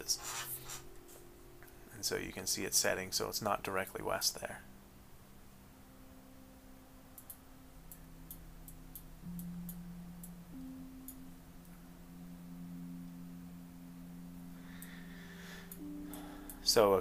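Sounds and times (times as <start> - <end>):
soft ambient music: 0.0 - 17.0.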